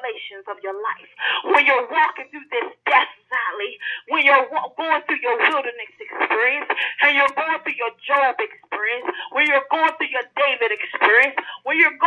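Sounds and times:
person preaching over telephone: 0.0 - 12.0.

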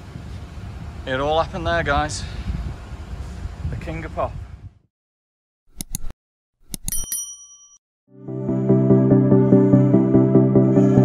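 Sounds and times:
mouse clicks: 5.8 - 6.1
short bell ding: 6.8 - 7.8
background music with steady pulse: 8.2 - 11.0.

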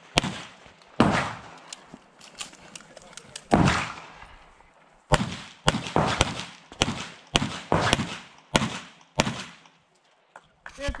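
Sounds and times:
pistol shot with echo: 0.1 - 1.6, 3.5 - 4.2, 5.1 - 9.7.

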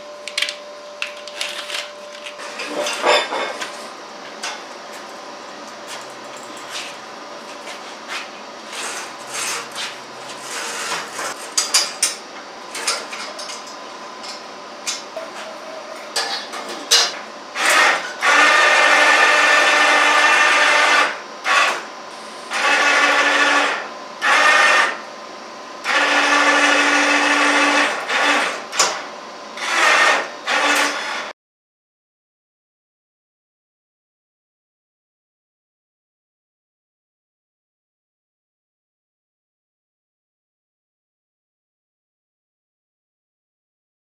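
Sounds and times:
electric winch motor running: 3.8 - 11.6, 17.4 - 25.2, 25.8 - 31.4.

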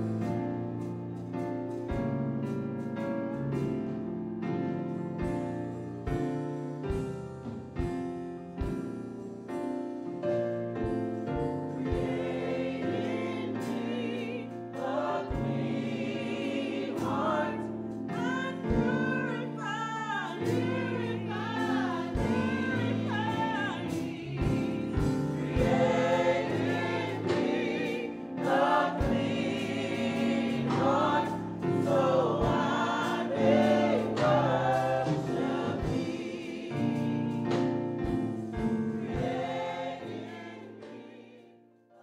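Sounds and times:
sustained accompaniment: 0.0 - 41.3
group singing a hymn: 10.2 - 42.0.

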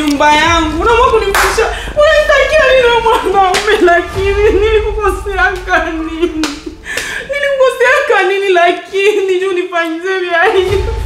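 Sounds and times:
woman talking in high voice: 0.0 - 6.6, 7.3 - 11.0.

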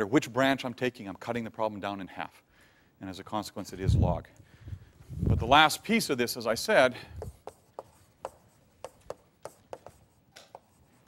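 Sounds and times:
chalk clicking on blackboard: 7.2 - 11.0.

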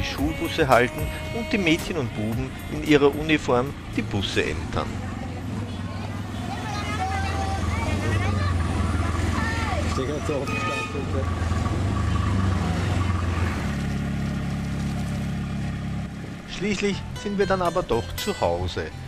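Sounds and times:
auto-rickshaw engine running: 0.0 - 19.0
people talking on street: 0.0 - 19.0.

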